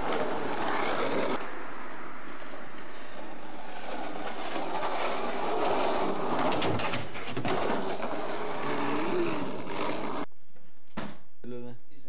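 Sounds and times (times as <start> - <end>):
skateboard wheels rolling on pavement: 0.0 - 10.3.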